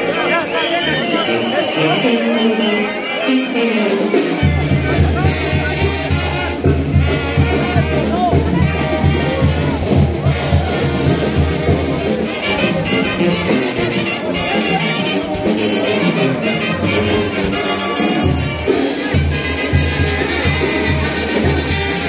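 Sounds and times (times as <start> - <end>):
brass band music: 0.0 - 22.0
crowd voices: 0.0 - 22.0.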